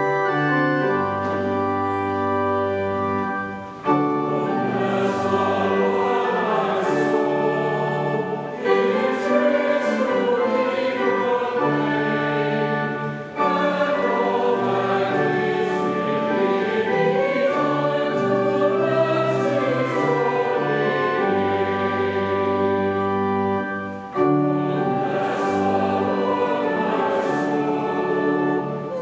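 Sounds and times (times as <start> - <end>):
choir and congregation singing hymn: 0.0 - 29.0
pipe organ: 0.0 - 29.0.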